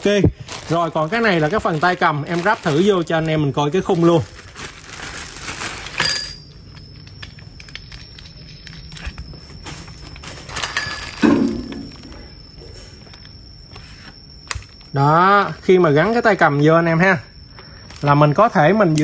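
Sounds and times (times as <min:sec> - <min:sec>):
plastic parts rustling and clattering: 0:00.0 - 0:13.4, 0:17.9 - 0:18.1
faint high whine: 0:00.0 - 0:19.0.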